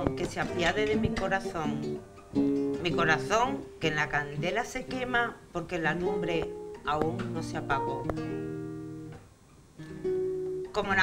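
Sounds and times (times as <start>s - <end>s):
acoustic guitar chord ringing: 5.9s - 11.0s.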